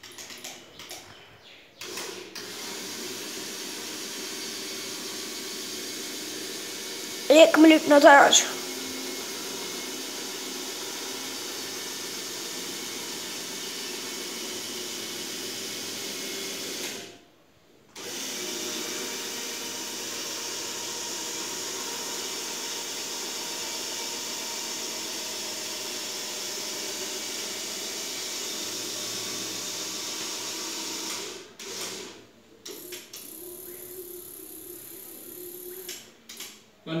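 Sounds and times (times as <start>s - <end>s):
small electric motors whirring: 32.7s - 36.1s.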